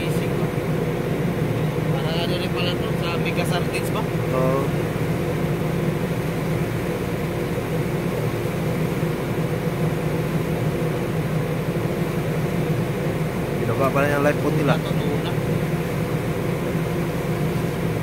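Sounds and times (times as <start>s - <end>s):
machinery droning: 0.0s - 18.0s.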